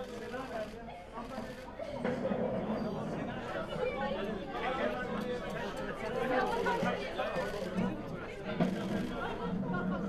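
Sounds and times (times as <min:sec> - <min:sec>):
indistinct chatter of people: 0:00.0 - 0:10.0.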